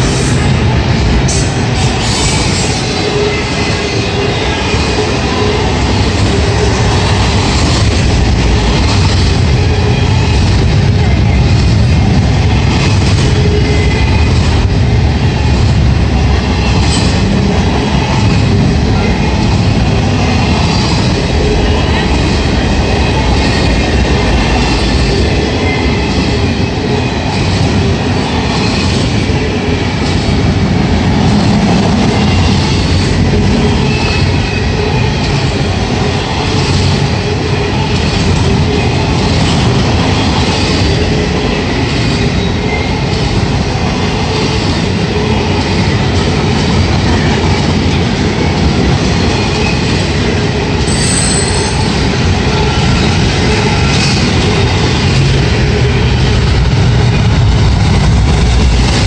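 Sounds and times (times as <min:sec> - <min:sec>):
steel wheels rumbling on rail: 0:00.0 - 0:59.0.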